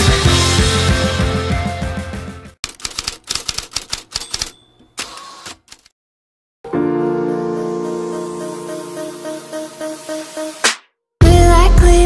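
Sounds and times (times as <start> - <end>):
music: 0.0 - 2.6, 6.6 - 12.0
typewriter key clacks: 2.7 - 4.6.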